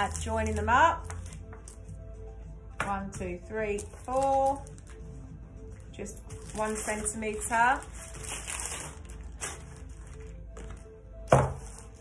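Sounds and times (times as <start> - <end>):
faint background music: 0.0 - 12.0
plastic crisp packets rustling: 6.2 - 10.6
paper rustling: 6.2 - 10.8.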